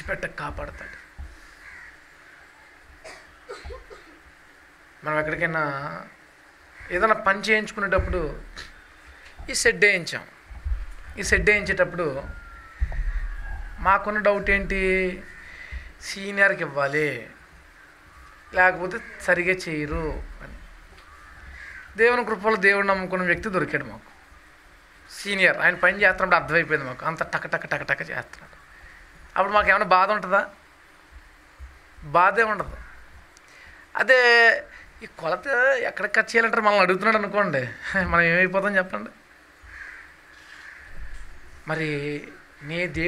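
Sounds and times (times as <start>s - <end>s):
man speaking: 0.0s - 1.0s, 5.0s - 6.1s, 6.9s - 8.8s, 9.4s - 10.4s, 11.2s - 12.4s, 13.8s - 17.4s, 18.5s - 20.6s, 22.0s - 24.1s, 25.1s - 28.6s, 29.4s - 30.6s, 32.0s - 32.8s, 34.0s - 39.2s, 41.6s - 43.0s
faint bird calls: 0.0s - 33.9s, 39.2s - 43.0s
man preaching through microphone: 6.9s - 8.7s, 11.2s - 12.4s, 13.8s - 15.3s, 18.5s - 20.6s, 29.4s - 30.6s, 41.7s - 43.0s.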